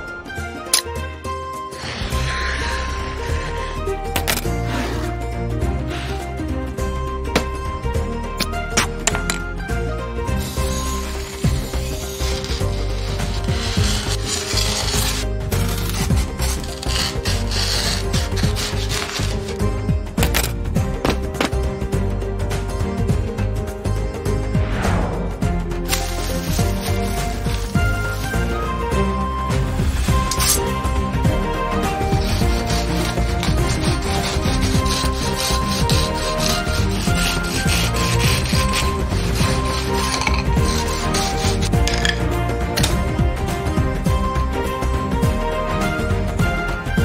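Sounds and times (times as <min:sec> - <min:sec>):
background music: 0:00.0 - 0:47.0
knife blade sawing foam board: 0:10.4 - 0:21.5, 0:25.9 - 0:28.6, 0:29.9 - 0:42.2.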